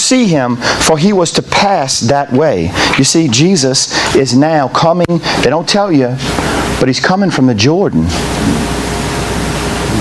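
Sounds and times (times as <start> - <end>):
loud static hiss: 0.0 - 10.0.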